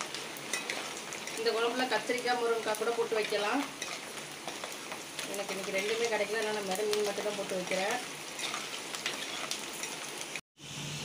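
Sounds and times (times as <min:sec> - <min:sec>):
garlic sizzling in hot oil: 0:00.0 - 0:11.0
ladle scraping pot: 0:03.2 - 0:06.0, 0:08.3 - 0:10.0.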